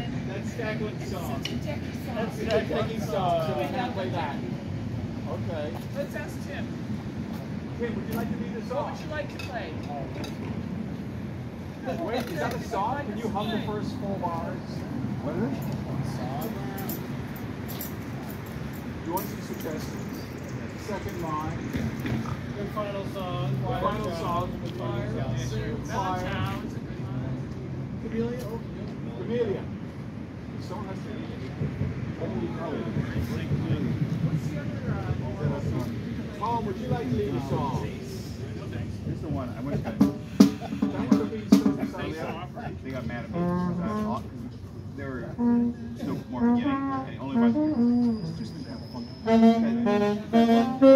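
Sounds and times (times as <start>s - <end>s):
people talking: 0.0s - 4.6s, 5.2s - 6.7s, 7.7s - 10.5s, 11.8s - 17.0s, 19.0s - 29.8s, 30.6s - 50.9s.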